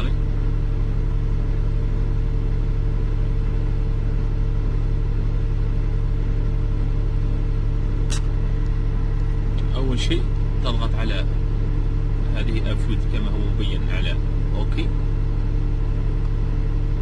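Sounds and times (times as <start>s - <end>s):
crane engine idling: 0.0s - 17.0s
sharp click: 8.0s - 8.4s.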